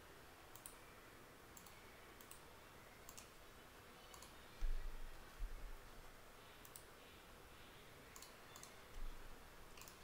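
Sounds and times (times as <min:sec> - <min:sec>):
computer mouse clicks: 0:00.5 - 0:00.8, 0:01.5 - 0:03.4, 0:04.0 - 0:05.2, 0:06.6 - 0:07.0, 0:08.1 - 0:10.0.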